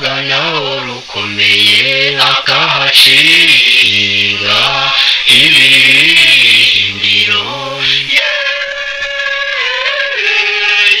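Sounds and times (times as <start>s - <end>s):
low voices singing a chant: 0.0s - 11.0s.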